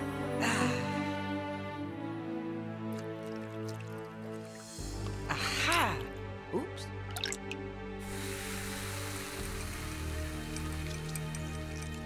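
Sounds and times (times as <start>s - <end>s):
background music: 0.0s - 12.0s
cartoon liquid drips and splats: 2.8s - 5.2s, 7.0s - 7.7s, 9.4s - 12.0s
fizzing hiss: 7.2s - 12.0s.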